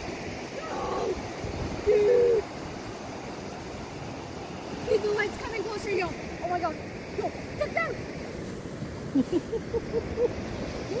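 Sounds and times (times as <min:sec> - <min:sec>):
wind noise on microphone: 0:00.0 - 0:03.0.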